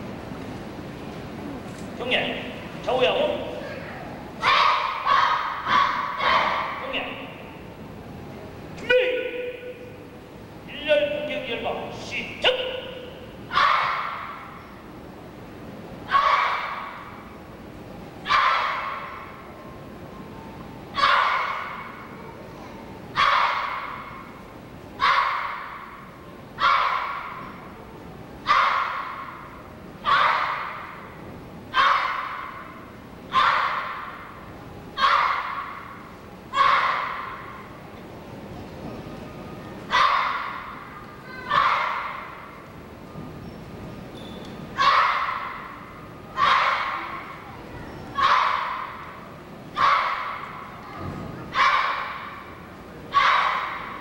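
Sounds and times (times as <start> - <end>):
children shouting in unison: 3.6 - 6.8, 13.5 - 14.6, 16.0 - 17.3, 18.2 - 19.4, 20.9 - 24.3, 25.0 - 27.7, 28.4 - 37.7, 39.9 - 42.7, 44.8 - 54.0.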